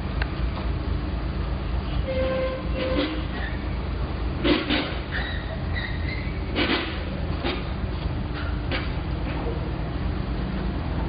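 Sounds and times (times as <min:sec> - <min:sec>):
locomotive rumbling past: 0:00.0 - 0:11.0.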